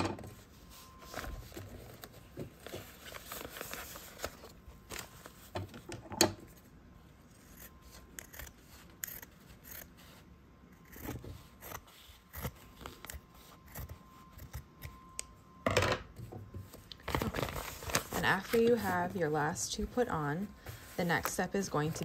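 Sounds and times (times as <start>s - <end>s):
scissors snipping fabric: 7.4s - 10.1s.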